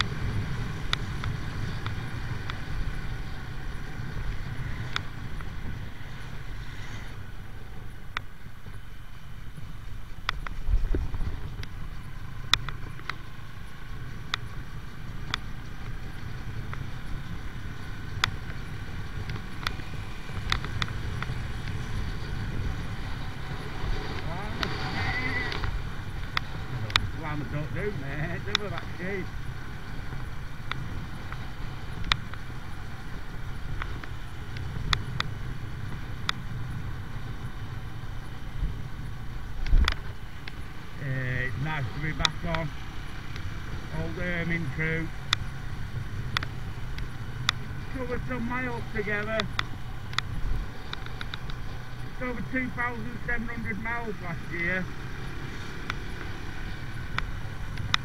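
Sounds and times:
motorcycle engine running: 0:00.0 - 0:58.0
sharp clicks: 0:10.2 - 0:14.6, 0:15.2 - 0:36.9, 0:41.4 - 0:58.0.

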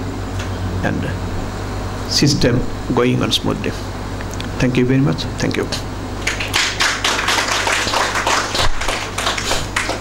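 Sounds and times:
audience applauding: 0:06.2 - 0:10.0.

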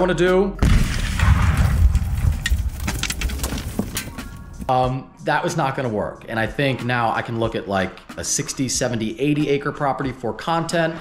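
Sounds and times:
low explosion rumble: 0:00.6 - 0:02.8
debris clicks falling: 0:00.8 - 0:04.4.

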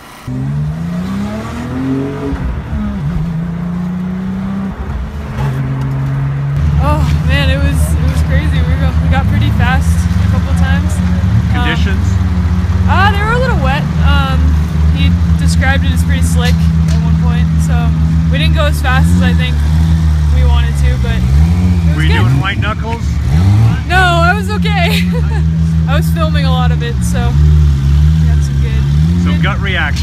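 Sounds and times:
car engine from inside cabin: 0:00.0 - 0:30.0.

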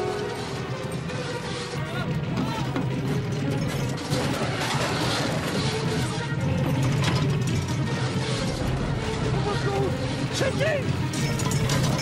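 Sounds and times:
caravan rattling and creaking: 0:00.0 - 0:12.0
low rumble: 0:08.4 - 0:10.4.

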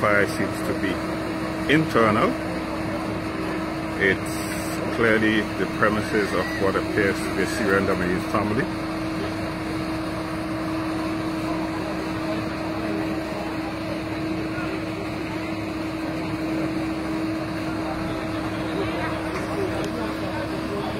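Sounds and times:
fire engine engine droning: 0:00.0 - 0:20.9.

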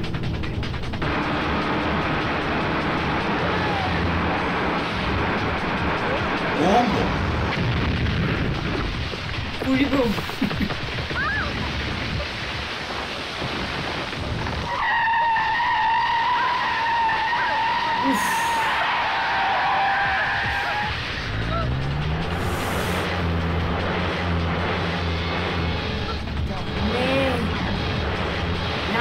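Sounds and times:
background music: 0:00.0 - 0:11.7, 0:16.6 - 0:29.0
engine revving: 0:00.0 - 0:11.8, 0:14.2 - 0:29.0
vehicles racing and skidding: 0:00.0 - 0:29.0
high tire squeal: 0:03.0 - 0:06.6, 0:14.6 - 0:24.4.

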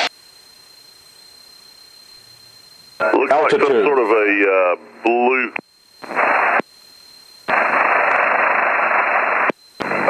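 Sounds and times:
radio static hiss: 0:00.0 - 0:10.0.

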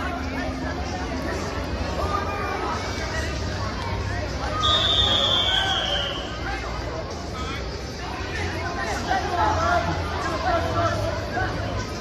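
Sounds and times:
crowd chatter: 0:00.0 - 0:12.0
referee's whistle: 0:04.6 - 0:06.4.

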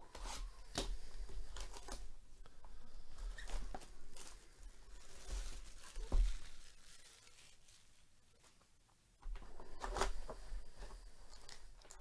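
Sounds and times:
plastic shrink wrap tearing: 0:05.0 - 0:08.1.

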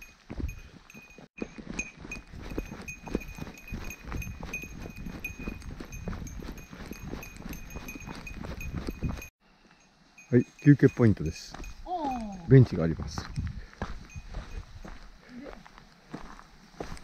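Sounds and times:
small bell jingling: 0:00.0 - 0:14.7
footsteps on dry leaves: 0:13.2 - 0:17.0.

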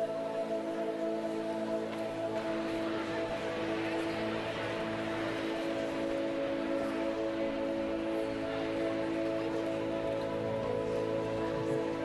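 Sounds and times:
murmur of congregation: 0:00.0 - 0:12.0
soft sustained chord music: 0:00.0 - 0:12.0.

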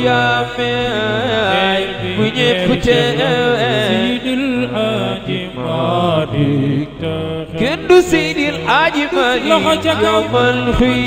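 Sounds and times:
men chanting religious song: 0:00.0 - 0:11.0.

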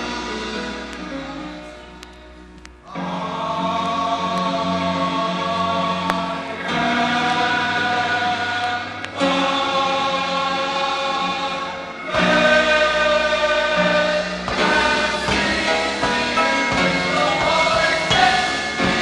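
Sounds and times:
gospel choir singing chords: 0:00.0 - 0:19.0.

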